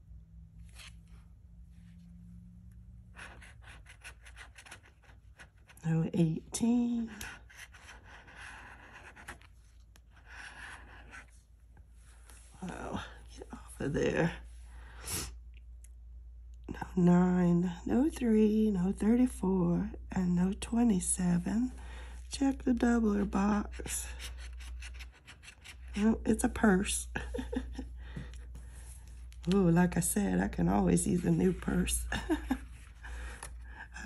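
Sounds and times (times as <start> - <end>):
scratching lottery ticket: 3.0 - 11.4, 22.7 - 26.4.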